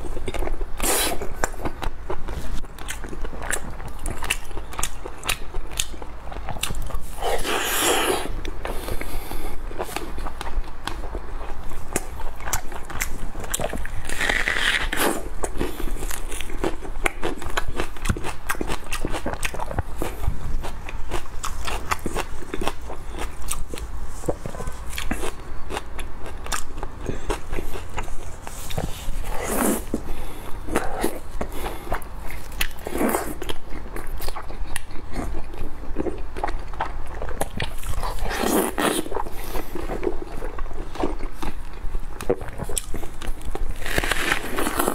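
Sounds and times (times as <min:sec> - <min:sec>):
wet chewing and mouth smacks: 0:00.1 - 0:44.9.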